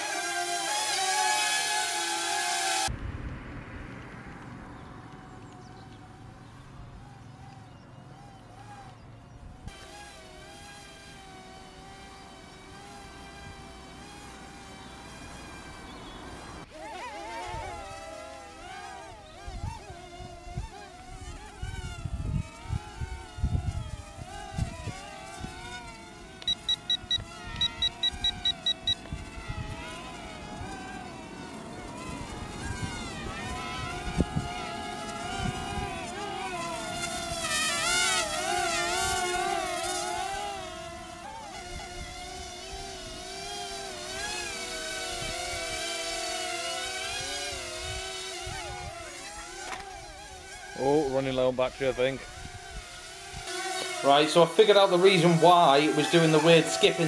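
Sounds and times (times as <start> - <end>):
quadcopter propellers whining: 0.0 - 3.0, 3.9 - 57.0
short high beeps: 26.5 - 29.0.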